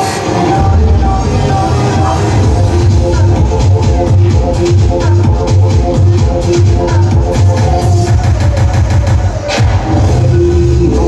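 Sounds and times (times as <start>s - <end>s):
electronic dance music with heavy bass: 0.0s - 11.0s.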